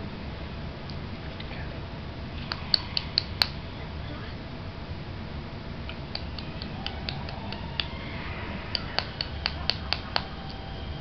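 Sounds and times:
sharp clicks: 2.4s - 3.6s, 5.9s - 8.0s, 8.7s - 10.6s.

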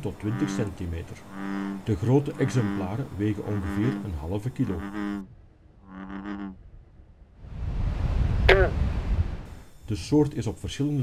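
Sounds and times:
bullfrog droning call: 0.0s - 6.6s, 8.5s - 8.8s.

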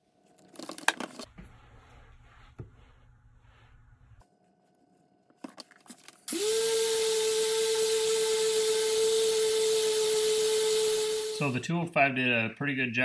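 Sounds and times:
polisher whining: 6.3s - 11.6s.

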